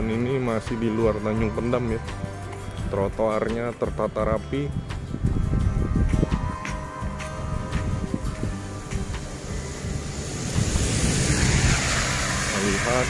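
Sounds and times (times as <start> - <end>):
wind rumble on microphone: 4.8 - 13.0
tyres hissing on wet road: 7.2 - 13.0.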